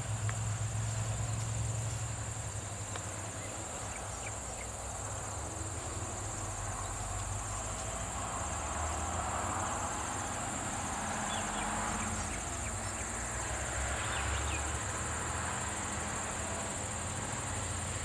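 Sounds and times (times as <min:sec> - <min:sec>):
insects chirring: 0:00.0 - 0:18.0.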